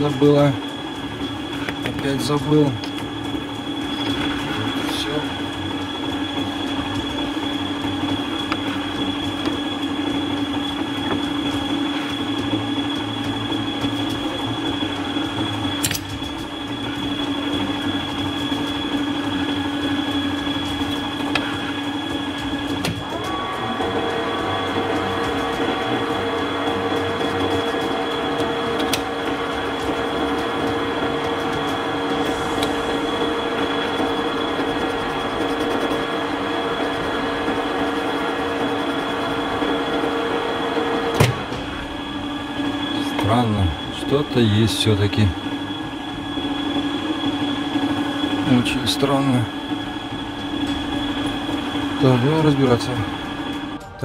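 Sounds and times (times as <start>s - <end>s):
chuck spinning up whine: 0.0s - 54.0s
metal lathe whining: 0.0s - 54.0s.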